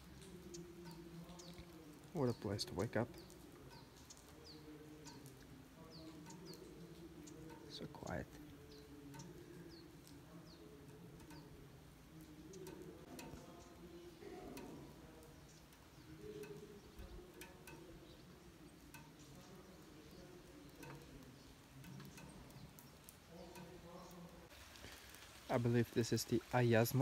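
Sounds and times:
faint bird chirps: 0:00.0 - 0:25.2
faint ticks and drips: 0:00.0 - 0:27.0
low faint murmur: 0:00.0 - 0:27.0.

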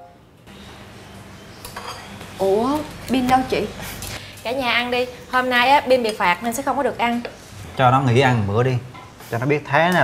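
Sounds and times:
plates and cutlery clinking: 0:01.6 - 0:02.3.

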